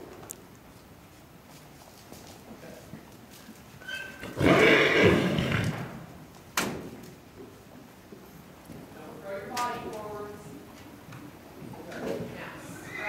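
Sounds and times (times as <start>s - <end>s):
horse whinnying: 3.8s - 6.0s, 12.7s - 13.0s.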